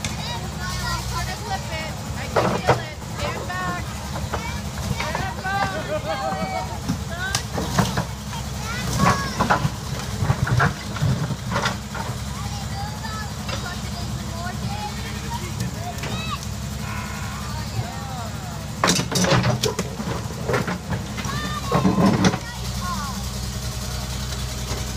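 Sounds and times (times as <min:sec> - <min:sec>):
diesel engine running: 0:00.0 - 0:24.9.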